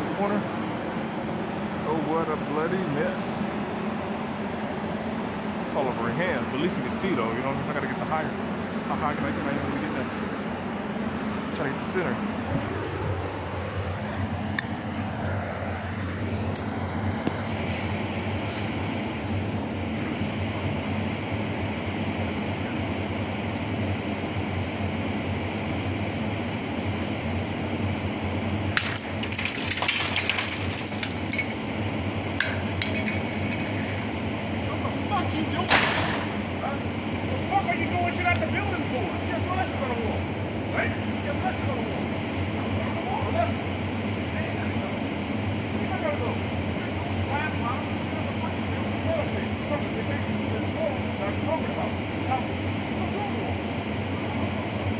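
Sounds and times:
low background hum: 0.0s - 54.9s.

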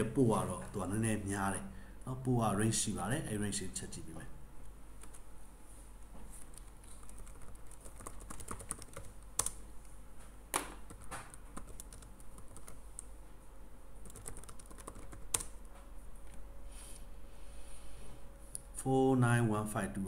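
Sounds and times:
computer keyboard typing: 5.0s - 5.2s, 6.5s - 9.6s, 10.8s - 13.1s, 14.0s - 15.6s.

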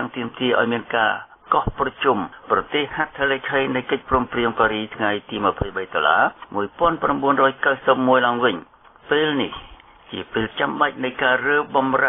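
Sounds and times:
man narrating news: 0.0s - 12.0s.

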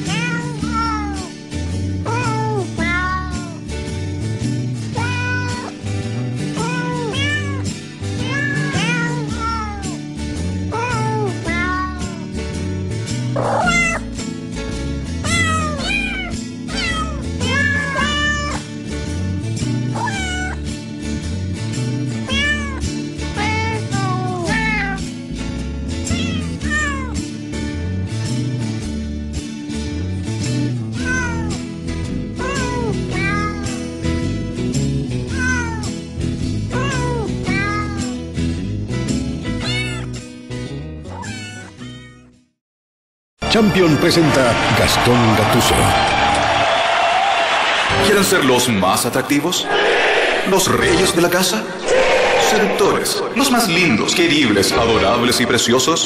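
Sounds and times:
cat meows pitched as melody: 0.0s - 1.3s, 2.0s - 3.6s, 5.0s - 5.8s, 6.6s - 10.0s, 10.7s - 12.3s, 13.4s - 14.1s, 15.2s - 18.7s, 19.9s - 20.6s, 22.3s - 25.1s, 26.1s - 27.2s, 31.0s - 31.6s, 32.4s - 33.8s, 35.3s - 36.0s, 36.7s - 38.2s, 39.6s - 40.2s, 41.1s - 42.4s.

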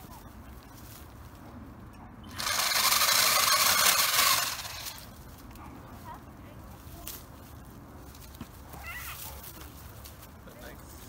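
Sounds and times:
pole saw running: 2.3s - 5.1s.

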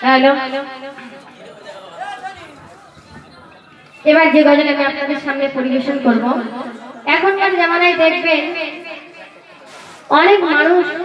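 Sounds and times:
low indistinct chatter: 0.0s - 11.0s.

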